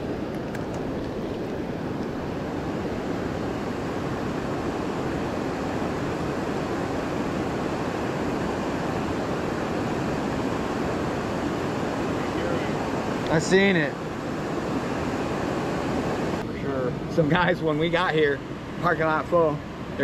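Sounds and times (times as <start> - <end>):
river water rushing: 0.0 - 16.4.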